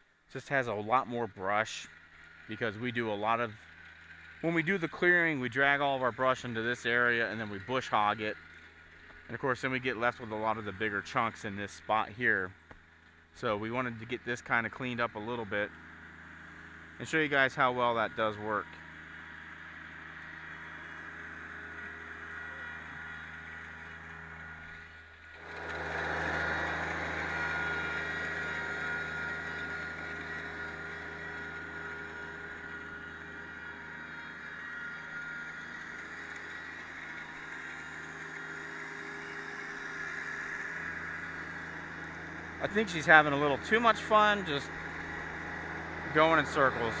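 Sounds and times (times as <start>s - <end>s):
tractor diesel engine running: 0.0s - 47.0s.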